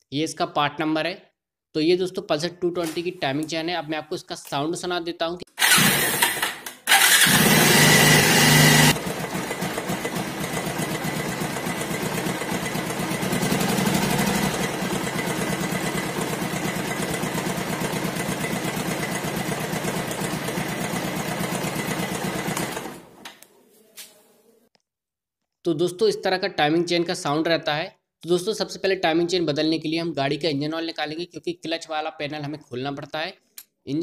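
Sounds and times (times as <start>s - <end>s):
motorcycle engine idling with clatter: 5.7s - 23.2s.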